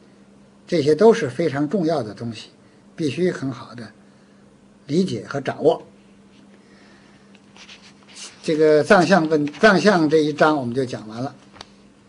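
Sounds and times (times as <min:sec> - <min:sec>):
steady low hum: 0:00.0 - 0:12.0
paper rustling: 0:07.5 - 0:11.7.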